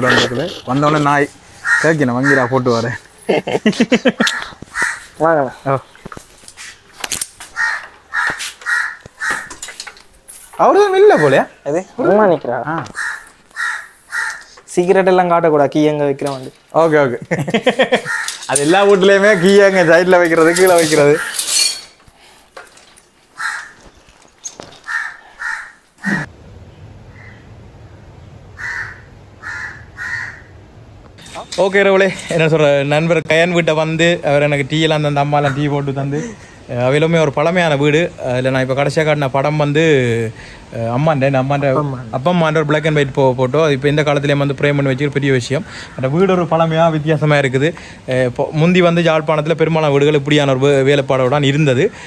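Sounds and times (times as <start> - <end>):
crow cawing: 1.5 - 3.0, 4.2 - 5.2, 7.5 - 9.6, 11.0 - 11.6, 12.8 - 14.6, 17.9 - 21.3, 23.3 - 24.0, 24.6 - 26.3, 28.6 - 30.5.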